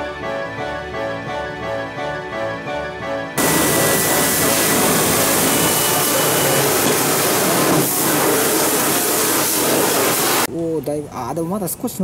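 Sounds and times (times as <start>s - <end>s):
pressure washer spray hissing: 3.4s - 10.5s.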